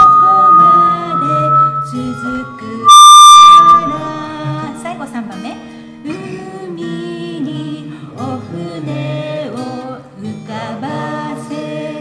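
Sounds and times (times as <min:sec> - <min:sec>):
voices singing: 0:00.0 - 0:04.9, 0:06.1 - 0:12.0
acoustic guitar: 0:00.0 - 0:12.0.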